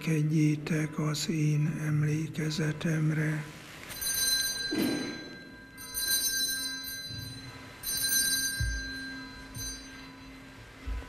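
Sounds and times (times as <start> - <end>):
altar bells ringing: 3.8 - 11.0.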